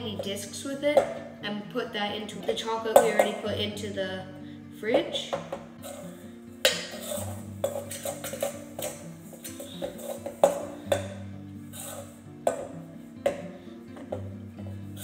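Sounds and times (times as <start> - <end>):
background music: 0.0 - 15.0
spoon scraping metal bowl: 5.8 - 13.4.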